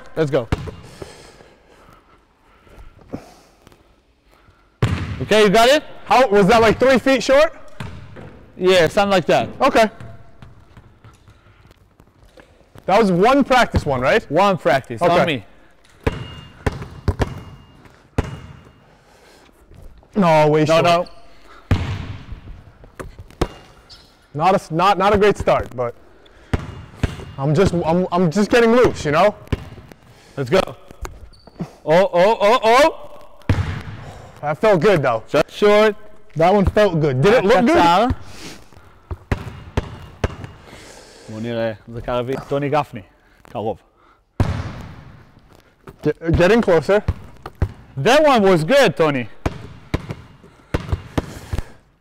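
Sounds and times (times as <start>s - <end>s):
basketball bouncing on hardwood: 0.5s - 0.9s, 4.8s - 5.2s, 7.8s - 8.4s, 16.0s - 18.7s, 21.7s - 23.6s, 29.4s - 29.9s, 33.5s - 34.0s, 39.0s - 40.6s, 44.4s - 45.0s, 45.9s - 47.9s, 49.4s - 51.4s.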